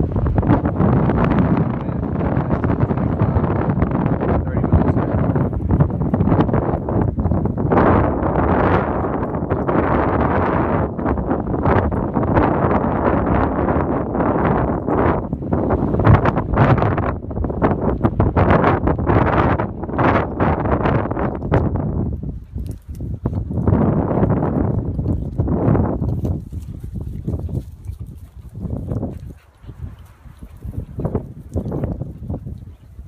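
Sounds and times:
wind buffeting microphone: 0.0 - 33.0
rustling and crackling: 21.4 - 33.0.

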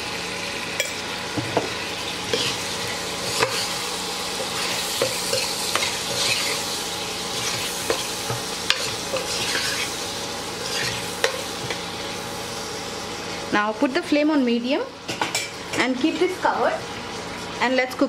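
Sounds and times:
prawns sizzling in oil: 0.0 - 18.0
metal spoon scraping pot: 3.2 - 3.8, 4.4 - 6.6, 8.7 - 10.0, 10.6 - 11.8.

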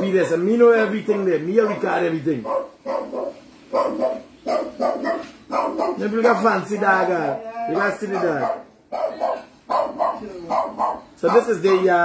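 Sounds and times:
dog barking: 0.0 - 6.5, 8.0 - 12.0.

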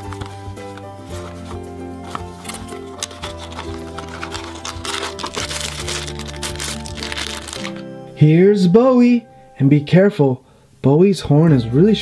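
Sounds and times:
cardboard packaging crinkling: 0.0 - 7.9
background music: 0.0 - 12.0.

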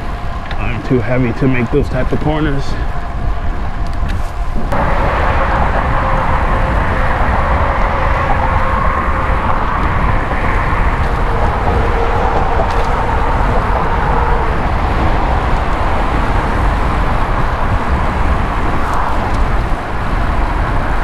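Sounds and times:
road and traffic noise: 0.0 - 21.0
wind rushing over microphone: 0.0 - 21.0.

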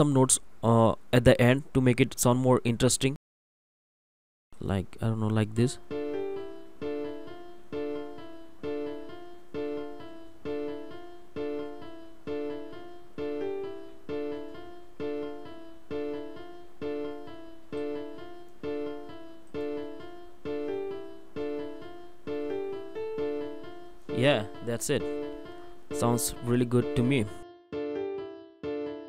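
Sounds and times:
software piano looping melody: 5.4 - 29.0.

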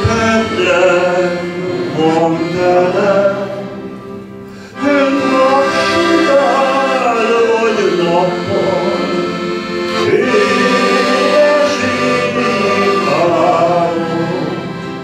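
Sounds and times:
piano accordion playing melody: 0.0 - 15.0.

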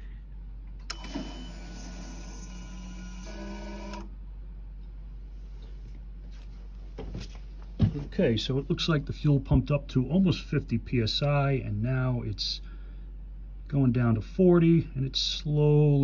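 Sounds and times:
electric fuel pump running: 0.9 - 4.1.

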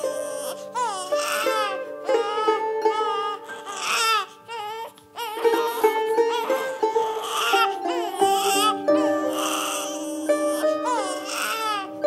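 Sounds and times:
background music with held notes: 0.0 - 12.0
young child crying: 0.0 - 12.0.

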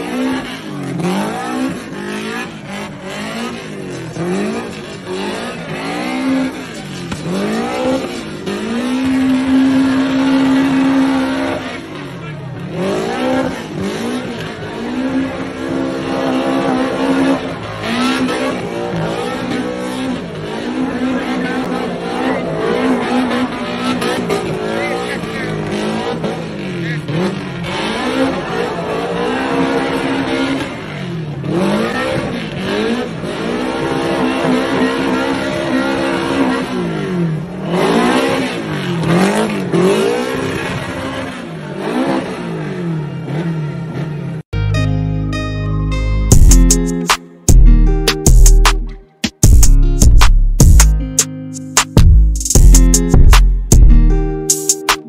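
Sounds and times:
car engine revving hard: 0.0 - 44.5.

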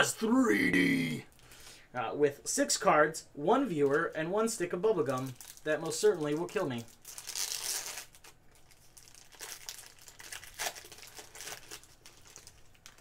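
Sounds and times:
wrapper being torn and crinkled: 4.9 - 13.0.

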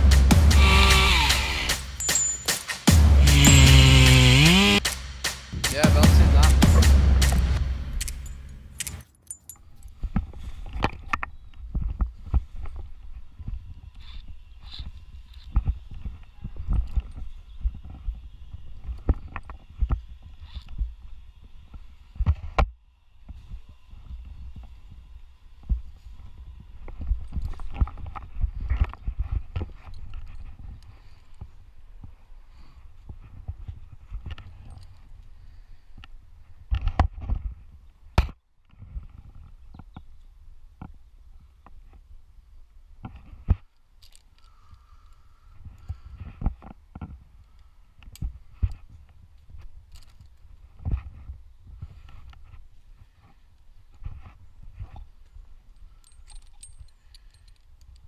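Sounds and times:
light metallic jingles: 2.0 - 2.8, 8.0 - 10.0, 54.9 - 58.0.

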